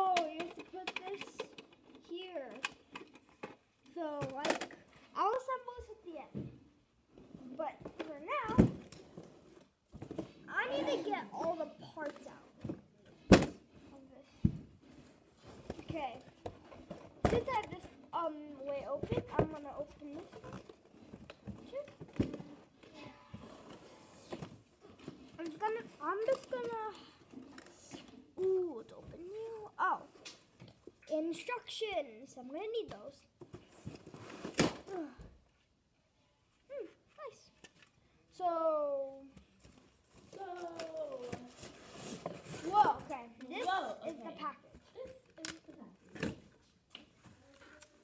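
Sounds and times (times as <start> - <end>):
child talking and exclaiming: 0.0 - 2.8, 3.9 - 6.6, 7.4 - 8.9, 10.4 - 12.6, 17.2 - 20.6, 22.8 - 24.0, 25.3 - 30.3, 31.0 - 33.4, 36.7 - 37.6, 38.3 - 39.5, 40.2 - 41.6, 42.5 - 46.0.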